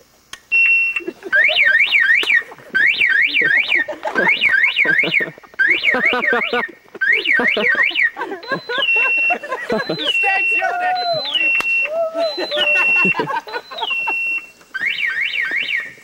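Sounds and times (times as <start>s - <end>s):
car alarm siren: 0.5s - 16.0s.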